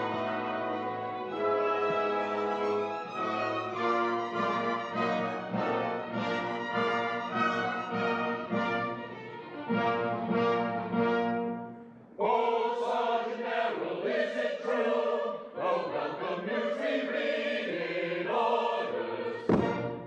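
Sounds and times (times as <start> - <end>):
orchestra with brass playing: 0.0 - 11.9
chorus singing: 0.0 - 20.0.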